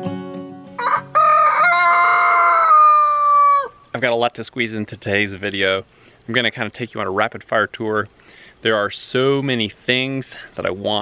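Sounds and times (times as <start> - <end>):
rooster crowing: 0.8 - 3.8.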